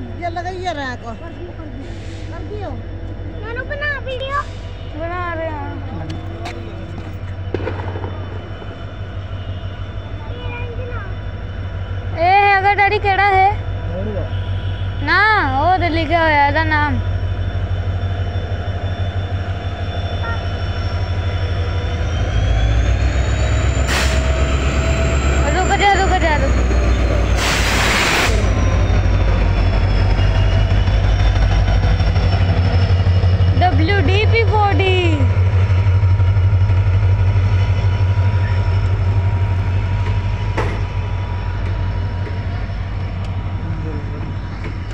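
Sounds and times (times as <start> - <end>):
diesel train rumbling past: 0.0 - 44.9
faint high whine: 0.0 - 44.9
rush of passing train: 0.0 - 44.9.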